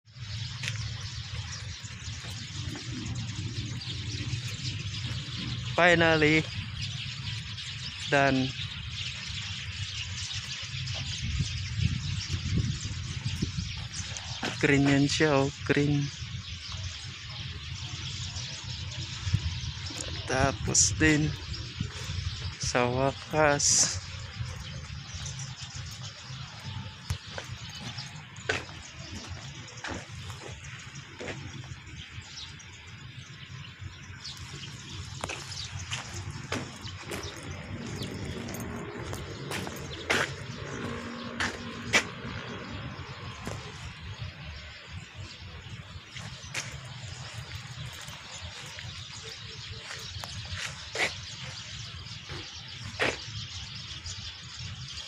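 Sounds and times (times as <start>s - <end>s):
low rumbles: 33.3s - 49.3s.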